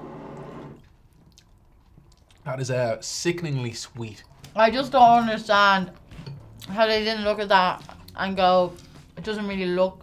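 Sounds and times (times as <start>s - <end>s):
chewing crunchy cereal: 1.1s - 2.5s.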